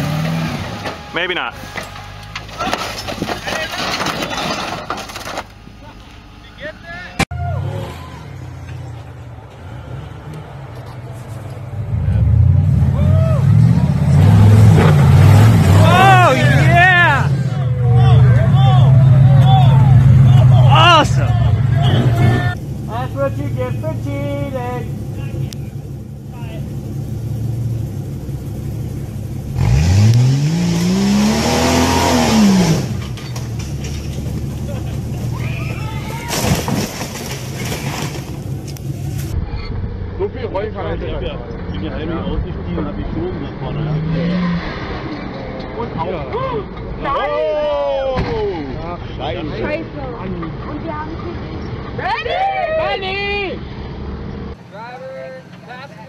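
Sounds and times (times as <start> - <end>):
off-road engines revving: 0.0 - 56.0
people shouting: 7.3 - 8.5, 12.9 - 13.6, 15.7 - 22.6, 35.2 - 36.6, 46.3 - 48.7, 52.0 - 53.6.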